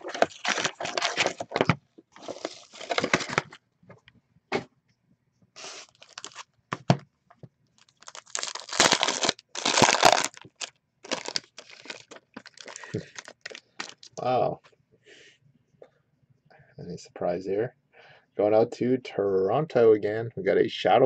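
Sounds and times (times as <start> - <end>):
packaging tearing and crinkling: 0.0 - 3.6, 5.6 - 6.4, 7.8 - 14.2.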